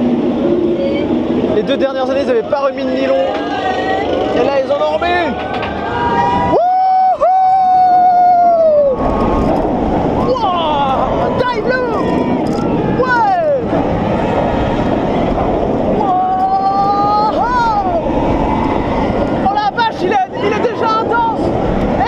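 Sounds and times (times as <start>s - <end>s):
roller coaster train running: 0.0s - 22.0s
rush of wind: 0.0s - 22.0s
riders screaming: 5.3s - 9.4s.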